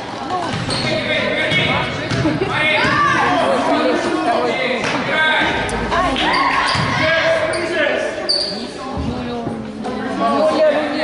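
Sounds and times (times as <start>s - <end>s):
basketballs bouncing on gym floor: 0.3s - 3.2s.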